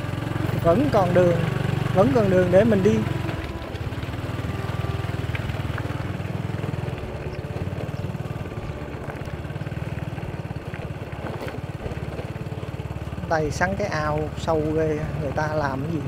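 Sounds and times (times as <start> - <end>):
small motorbike engine running: 0.0 - 16.0.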